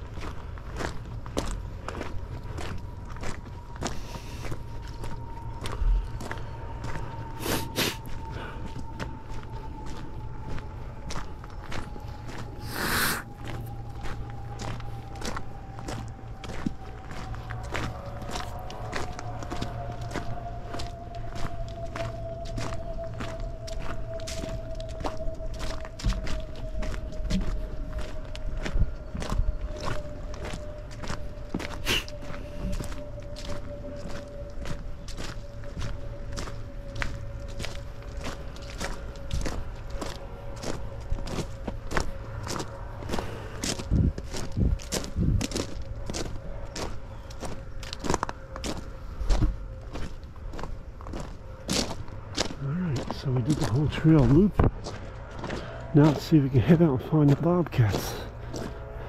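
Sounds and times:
footsteps on a trail: 0:00.0 - 0:59.0.

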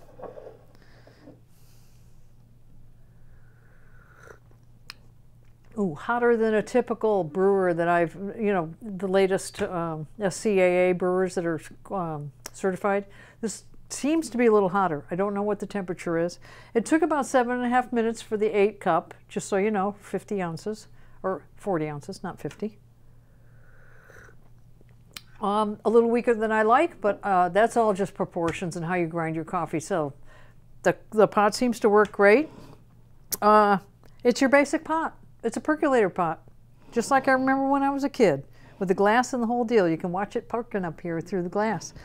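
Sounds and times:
person slurping coffee: 0:03.8 - 0:04.5, 0:23.7 - 0:24.5.

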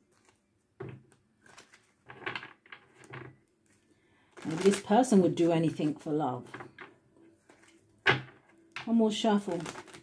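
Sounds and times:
cards being shuffled: 0:00.0 - 0:08.3, 0:09.4 - 0:10.0.

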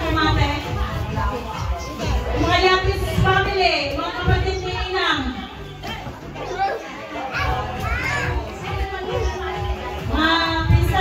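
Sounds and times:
background music: 0:00.0 - 0:11.0
children chattering: 0:00.0 - 0:11.0.

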